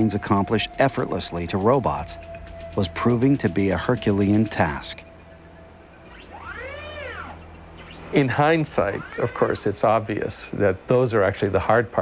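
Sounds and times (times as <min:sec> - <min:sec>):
gliding pitched tone: 0:00.0 - 0:10.4
low hum: 0:00.0 - 0:10.6.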